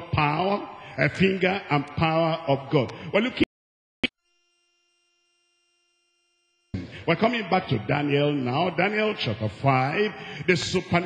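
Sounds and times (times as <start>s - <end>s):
faint steady electronic tone: 4.1s - 6.8s.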